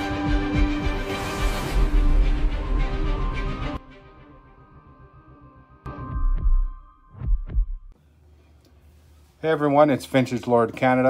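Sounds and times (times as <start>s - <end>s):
low heartbeat-like thumps: 5.9s - 7.9s.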